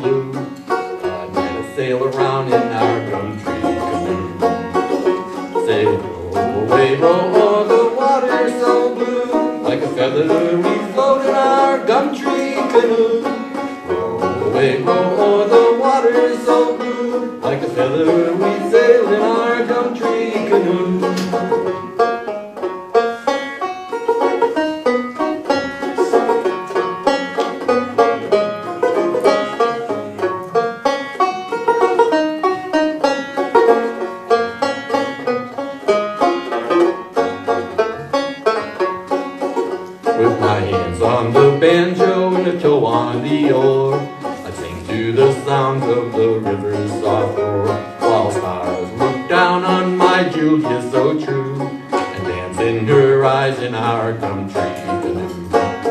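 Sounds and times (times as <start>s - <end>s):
banjo picking: 0.0s - 55.9s.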